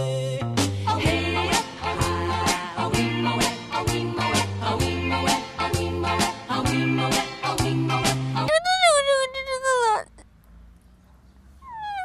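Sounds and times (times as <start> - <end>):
boy crying: 8.5 - 10.2.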